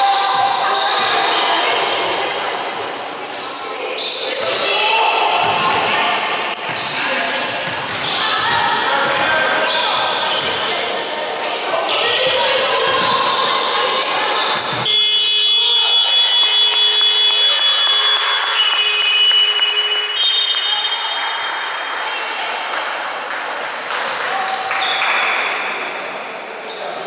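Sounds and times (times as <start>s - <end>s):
voices calling out: 0.0s - 23.0s
basketball bouncing on hardwood: 7.6s - 9.4s.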